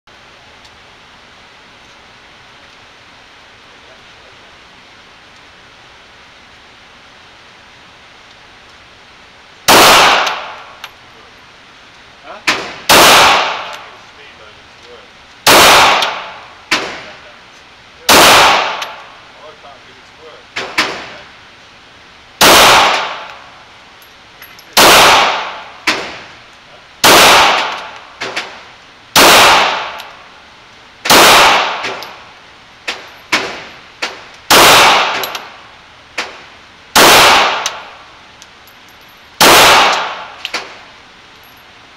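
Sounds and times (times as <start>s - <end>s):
steady hiss: 0.1s - 41.9s
pistol shot echoing indoors: 27.0s - 28.5s, 39.4s - 40.7s
faint sharp cracks: 39.4s - 40.8s.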